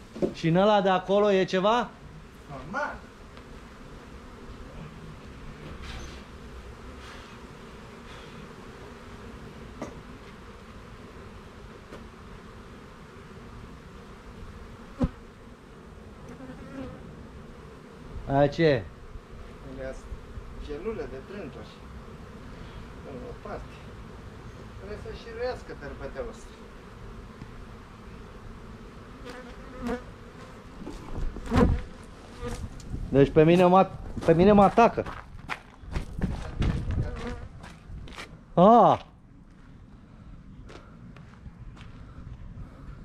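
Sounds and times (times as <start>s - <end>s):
bees humming: 1.0s - 33.0s.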